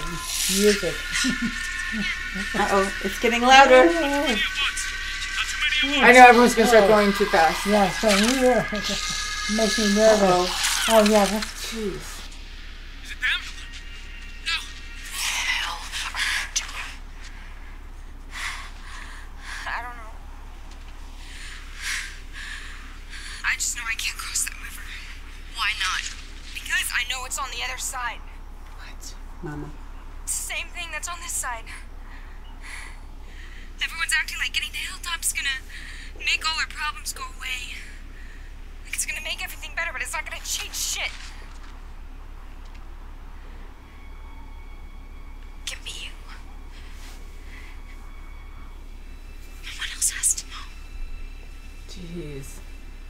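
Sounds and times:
tv dialogue speech: 0.0 - 12.3, 13.0 - 13.7, 19.5 - 20.2, 23.4 - 31.9, 33.8 - 38.0, 38.8 - 41.4
steady low hum: 0.0 - 53.0.

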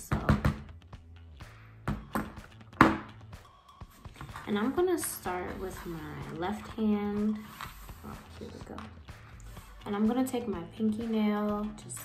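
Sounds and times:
soft background music: 0.0 - 12.0.

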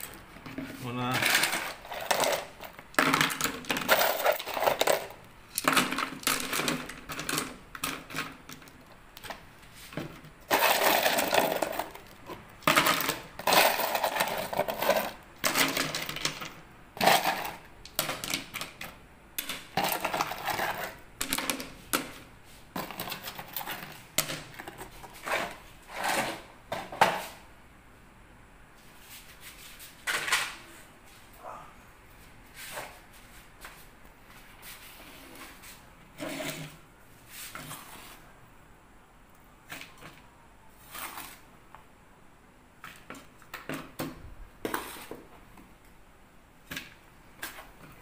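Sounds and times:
stones clattering into plastic pots: 0.0 - 27.3.

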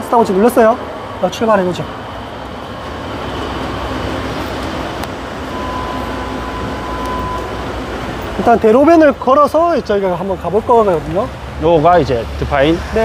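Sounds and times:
city street traffic: 0.0 - 13.0
thin high tone: 5.4 - 7.7.

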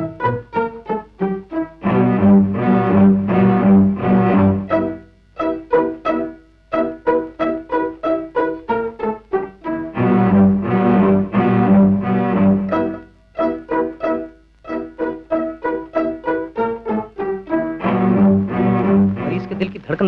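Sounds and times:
tense orchestral bowed strings: 1.8 - 5.0, 9.8 - 13.0, 17.5 - 19.6.

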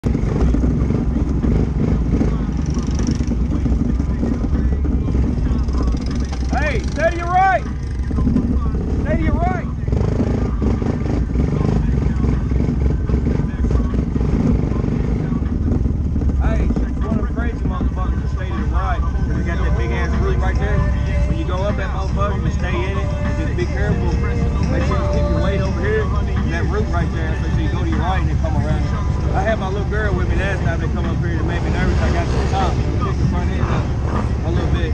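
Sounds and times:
quad bike engine running: 0.0 - 34.9
person speaking: 16.6 - 34.9.

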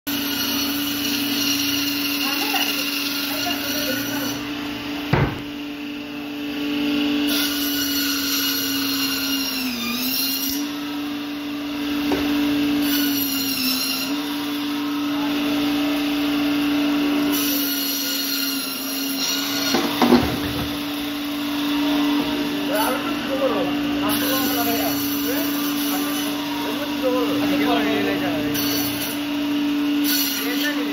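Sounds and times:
electric band saw humming: 0.1 - 30.9
sharp knock: 5.1 - 5.5.

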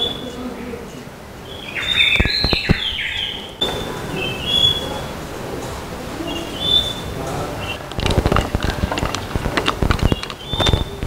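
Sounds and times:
bird chirps: 0.0 - 0.4, 1.4 - 7.9, 10.0 - 11.0.

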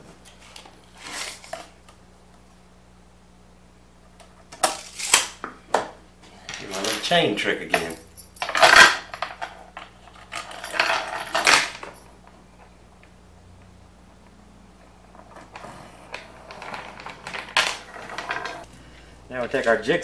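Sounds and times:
metal chain rattling on boards: 10.2 - 12.0, 16.5 - 18.7.

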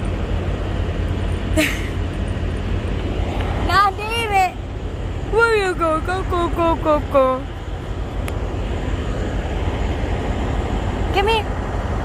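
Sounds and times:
vehicles idling rumble: 0.0 - 12.0.

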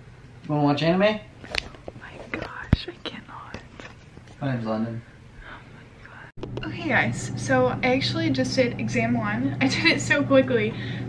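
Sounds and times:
soft whispering: 2.0 - 3.9, 5.4 - 6.3.

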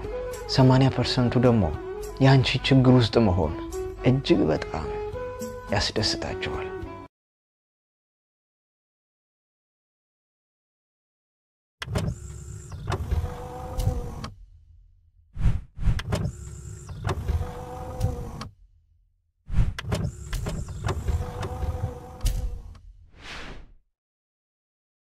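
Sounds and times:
mechanical whirring slide: 11.8 - 14.4, 15.4 - 18.6, 19.5 - 23.8.

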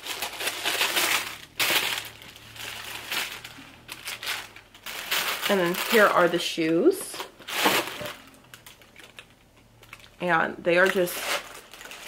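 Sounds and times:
tissue paper crinkling: 0.0 - 9.3, 10.8 - 12.0.

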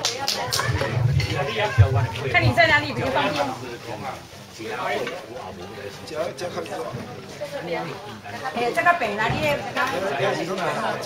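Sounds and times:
faint voices talking: 0.0 - 11.0.

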